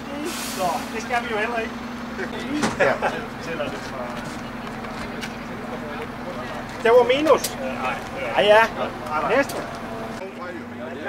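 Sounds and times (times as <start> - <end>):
bus engine idling: 0.0 - 11.0.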